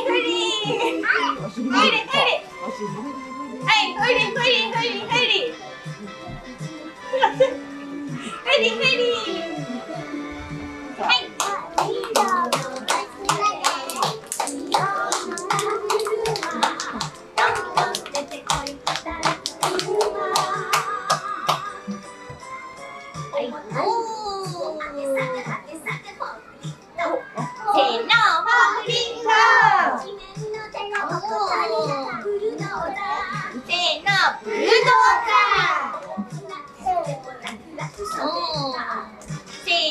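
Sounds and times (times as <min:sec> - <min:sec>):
children's song from cd player: 0:00.0 - 0:39.9
young children singing: 0:09.6 - 0:22.0, 0:28.1 - 0:39.2
hand clapping: 0:11.4 - 0:22.4.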